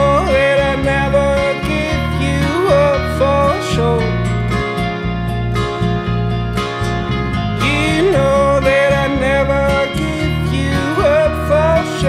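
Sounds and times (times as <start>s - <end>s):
man singing long notes: 0.0s - 4.2s, 7.6s - 12.0s
bass and electric guitar: 0.0s - 12.0s
strummed acoustic guitar: 0.0s - 12.0s.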